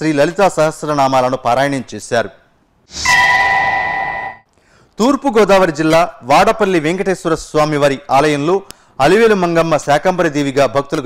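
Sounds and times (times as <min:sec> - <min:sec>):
bell-like chime: 0:03.0 - 0:04.5.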